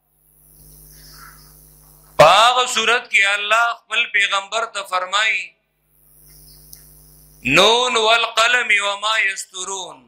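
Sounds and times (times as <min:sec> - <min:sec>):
electrical hum with hiss: 0:00.0 - 0:10.0.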